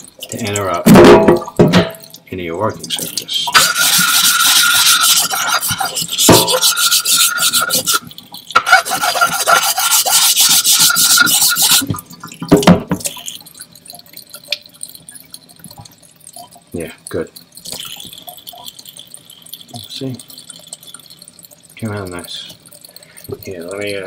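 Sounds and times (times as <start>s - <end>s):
gritty scraping of whetstone: 3.6s - 8.0s, 8.6s - 11.8s.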